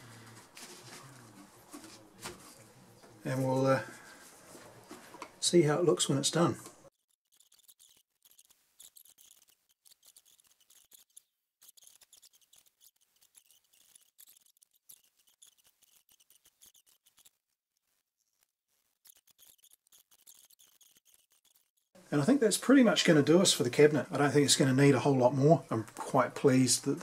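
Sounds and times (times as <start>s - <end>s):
steel wool rubbing wood: 6.9s - 22.0s.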